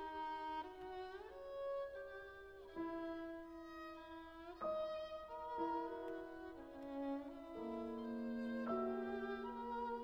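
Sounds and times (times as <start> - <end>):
solo violin slow notes: 0.0 - 10.0.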